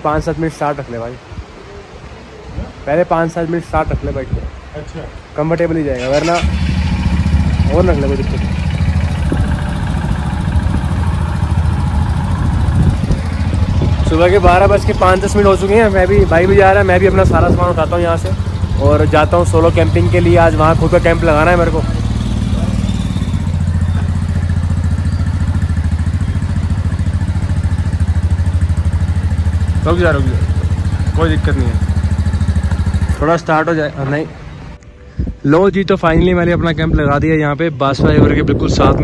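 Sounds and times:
vehicle engine idling: 0:06.0 - 0:34.8.

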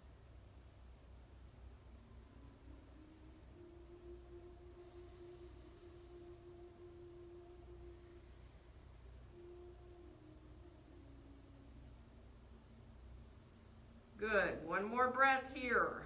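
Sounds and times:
slow background music: 0:00.0 - 0:16.0.

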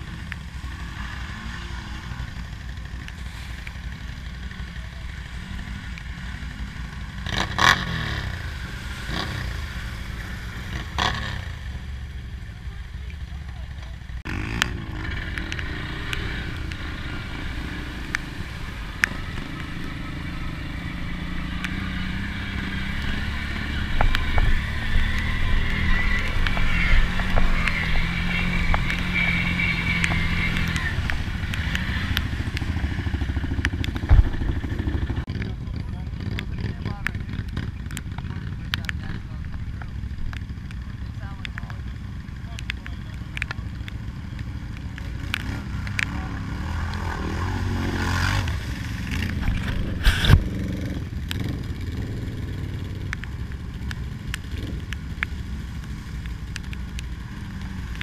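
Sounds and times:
atv engines running: 0:00.0 - 0:58.0
water splashing and churning: 0:05.3 - 0:12.4.

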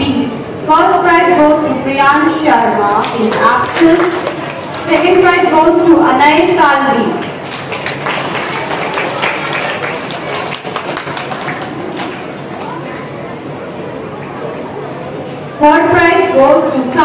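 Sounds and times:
scattered clapping: 0:03.0 - 0:05.6, 0:06.9 - 0:15.5
audience murmuring: 0:03.3 - 0:06.0, 0:07.1 - 0:17.0.

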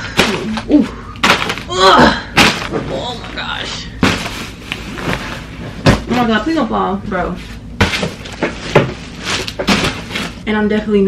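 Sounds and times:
packages thudding onto a bed: 0:01.2 - 0:01.7, 0:02.4 - 0:02.8, 0:04.0 - 0:06.2, 0:07.8 - 0:10.4.

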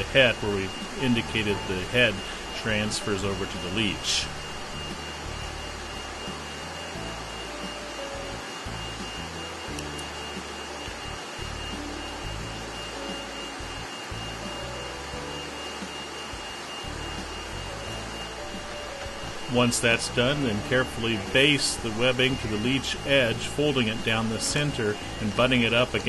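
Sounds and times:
thin high whine: 0:00.0 - 0:26.0
vacuum table rushing hum: 0:00.0 - 0:26.0.

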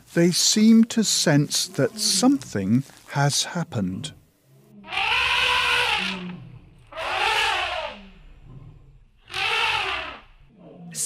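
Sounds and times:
elephants trumpeting: 0:01.3 - 0:02.9, 0:04.8 - 0:10.4.

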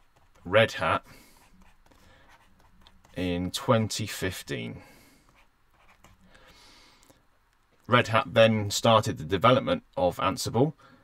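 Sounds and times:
pen scratching on surface: 0:01.2 - 0:03.4, 0:05.3 - 0:06.2.

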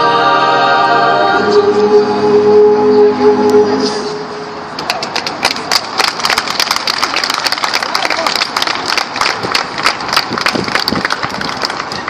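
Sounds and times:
audience applauding: 0:05.2 - 0:12.0.

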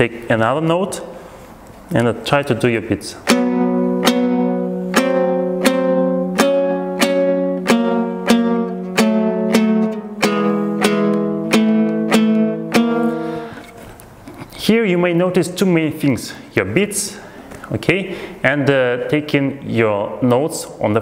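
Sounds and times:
lute strummed in slow rhythm: 0:03.3 - 0:13.8.

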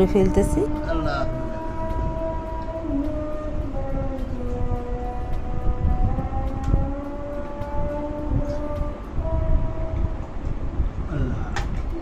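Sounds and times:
call to prayer over loudspeaker: 0:00.0 - 0:05.5
low rumble: 0:00.0 - 0:12.0.

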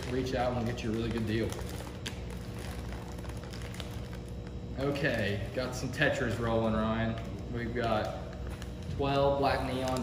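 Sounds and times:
plastic bags crinkling: 0:00.0 - 0:10.0
steady low hum: 0:00.0 - 0:10.0.

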